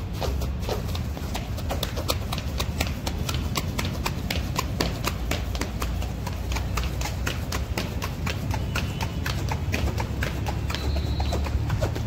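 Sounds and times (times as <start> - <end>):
feet running on treadmill belt: 0.0 - 12.0.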